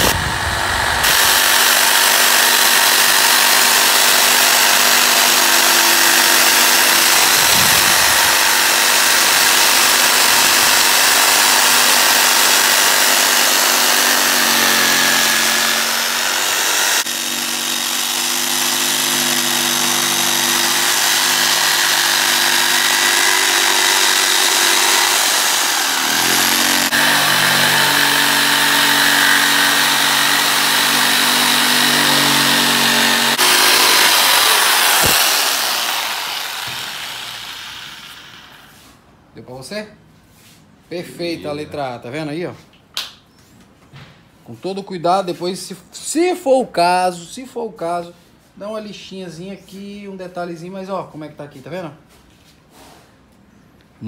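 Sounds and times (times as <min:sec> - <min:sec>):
electric jigsaw cutting plywood: 0:00.0 - 0:38.7.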